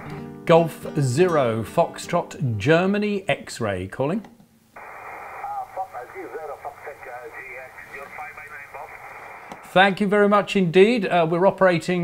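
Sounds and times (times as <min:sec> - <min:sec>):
thin narrow radio speech: 0:04.8 - 0:09.7
radio band noise hiss: 0:04.8 - 0:10.0.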